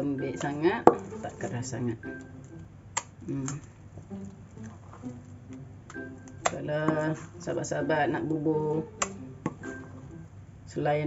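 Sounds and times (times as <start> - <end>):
spoon stirring batter in a bowl: 3.0 - 9.9.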